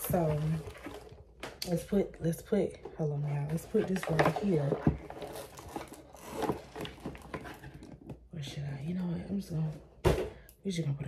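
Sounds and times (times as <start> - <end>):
packaging rustling and scraping: 0.0 - 1.4, 3.4 - 8.2.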